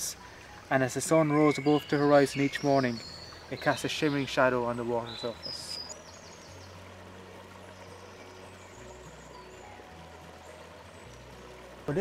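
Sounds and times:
shallow stream rushing: 0.0s - 12.0s
soft background music: 0.0s - 12.0s.

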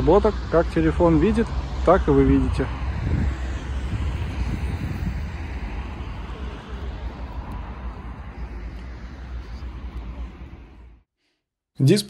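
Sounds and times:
wind buffeting microphone: 0.0s - 11.0s
distant city traffic: 0.0s - 11.1s.

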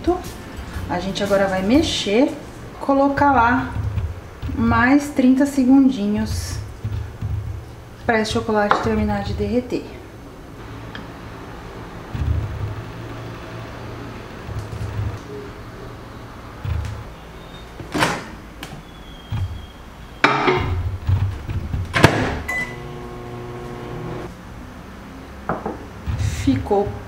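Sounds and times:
microwave oven humming: 22.3s - 24.3s
keypad beep: 22.5s - 22.8s.

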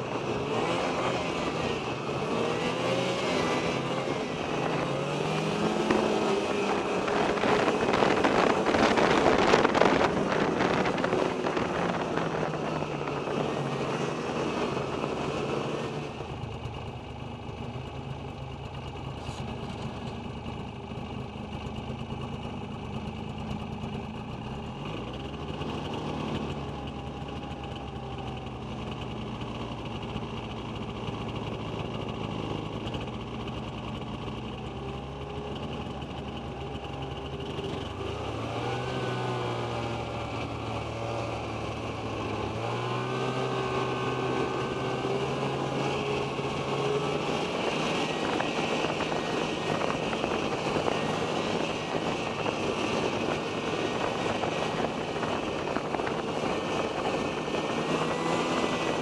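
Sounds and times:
snowmobile engine running: 0.0s - 59.0s.

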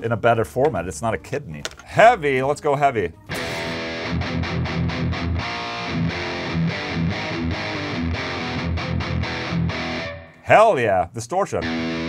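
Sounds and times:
distorted electric guitar riff: 3.3s - 10.5s, 11.6s - 12.0s.

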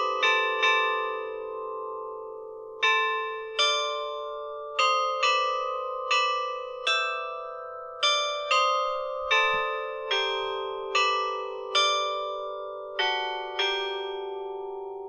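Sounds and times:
chime bells playing slow melody: 0.0s - 15.0s.

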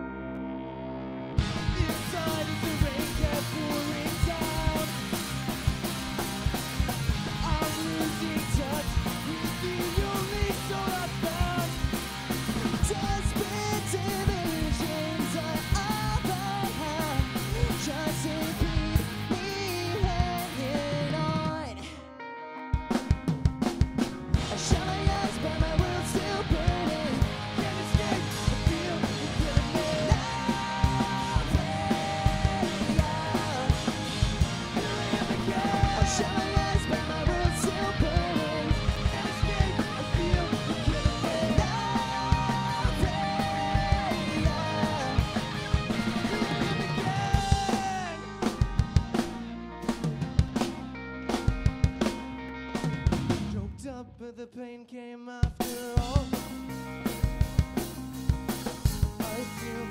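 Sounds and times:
pop-punk band playing live: 0.0s - 54.6s, 55.4s - 59.9s.

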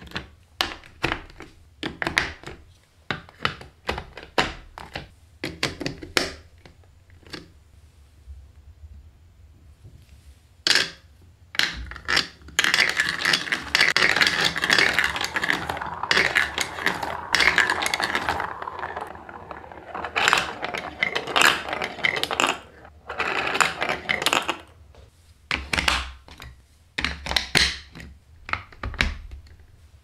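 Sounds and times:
plastic balls clattering down tracks: 11.6s - 24.8s.

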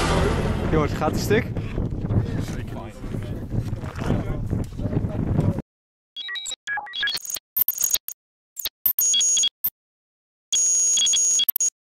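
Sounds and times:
electronic beeping tones: 6.2s - 9.6s, 10.6s - 11.7s.

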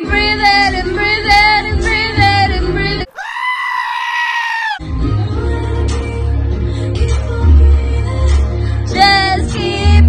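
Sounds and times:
sheep bleating: 3.1s - 4.8s.

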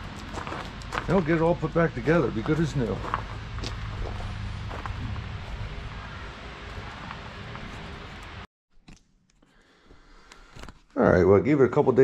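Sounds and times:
outdoor low rumble: 0.0s - 8.5s.

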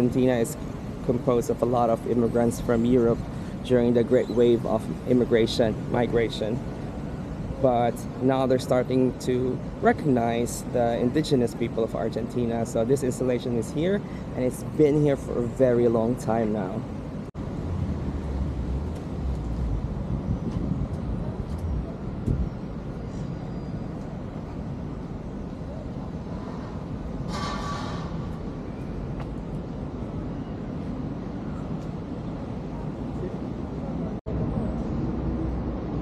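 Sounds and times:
city traffic rumble: 0.0s - 36.0s.

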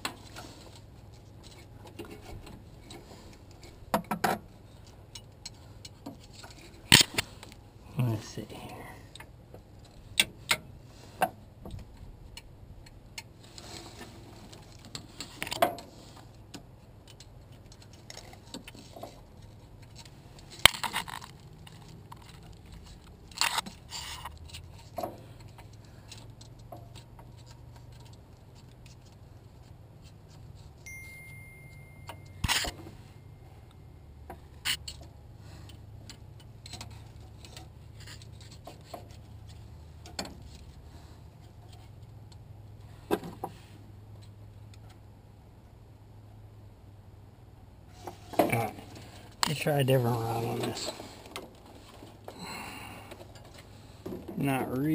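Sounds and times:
low steady hum: 0.0s - 54.9s.

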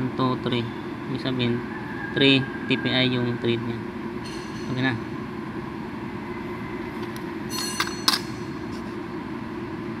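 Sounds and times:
steady low machine hum: 0.0s - 10.0s
caliper clinking against metal: 7.5s - 8.9s.

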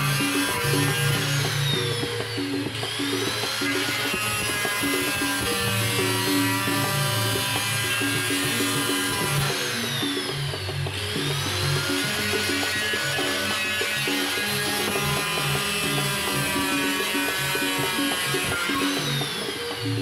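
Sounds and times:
angle grinder cutting plastic: 0.0s - 20.0s
background music: 0.0s - 20.0s.

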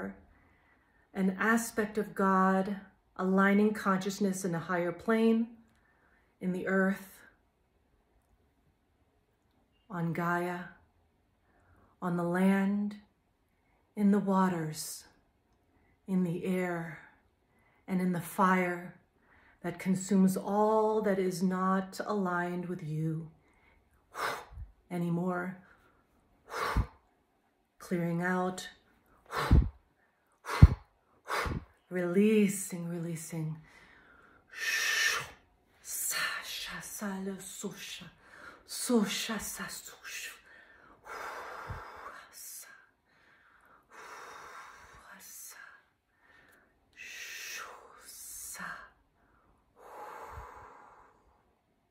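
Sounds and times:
woman breathy exhalations: 26.5s - 27.0s, 29.2s - 29.8s, 30.4s - 31.8s, 49.8s - 51.4s.

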